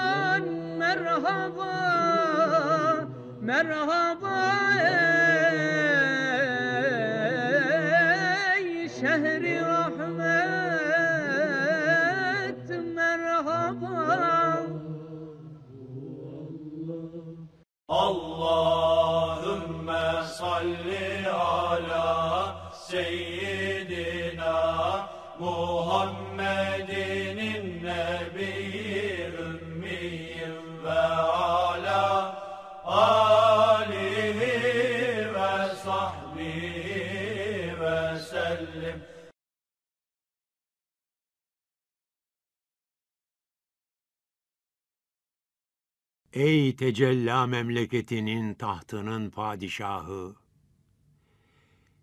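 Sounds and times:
solo voice chanting: 46.4 - 50.4.

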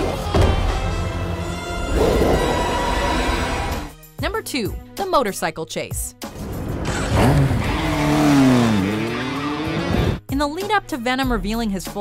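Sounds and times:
motorcycle engine revving: 6.4 - 10.2.

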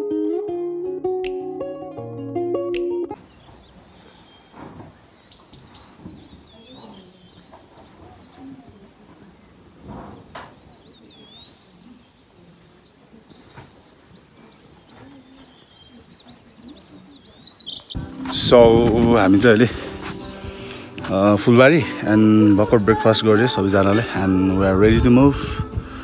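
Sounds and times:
small birds chirping: 3.1 - 26.0
faint distant voices: 3.2 - 26.0.

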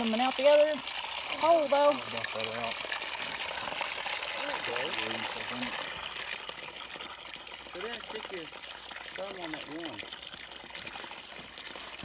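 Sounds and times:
water pouring from pipe: 0.0 - 12.0.

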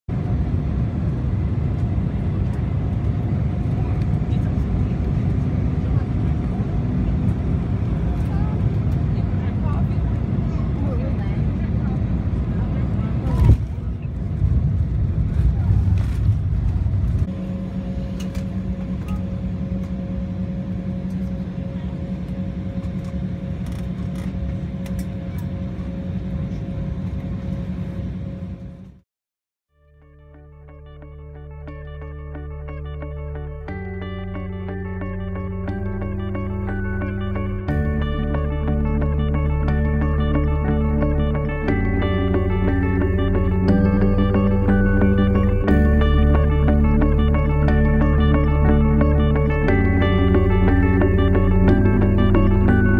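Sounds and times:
aircraft engine and rolling rumble: 0.1 - 29.0, 33.6 - 52.9.

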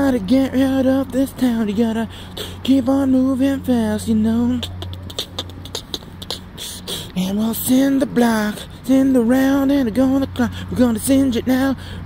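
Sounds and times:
man beatboxing: 0.0 - 11.8.

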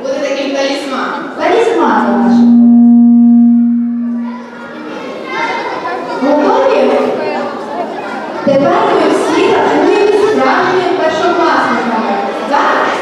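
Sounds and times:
voices talking in a hall: 0.0 - 13.0
loud steady pitched tone: 1.5 - 5.1.

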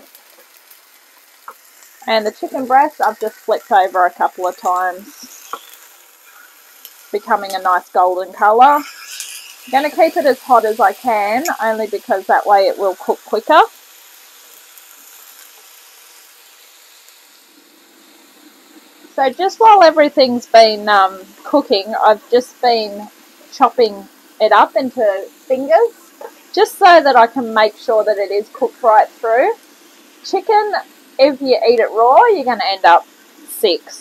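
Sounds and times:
chicken sizzling in a pan: 0.0 - 34.0.

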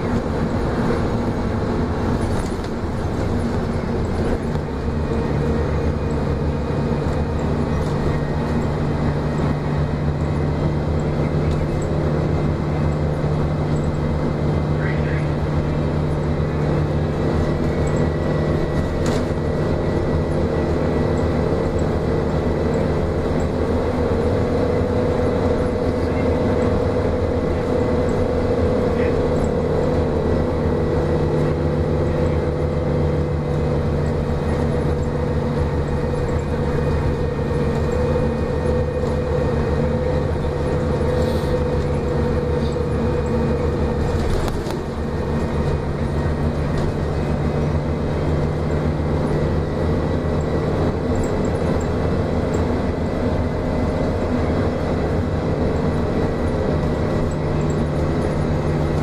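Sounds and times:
bus engine drone: 0.0 - 59.0
road noise: 0.0 - 59.0.

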